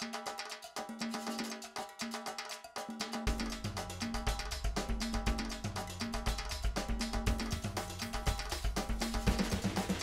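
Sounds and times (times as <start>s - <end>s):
background music with sharp percussion: 0.0s - 10.0s.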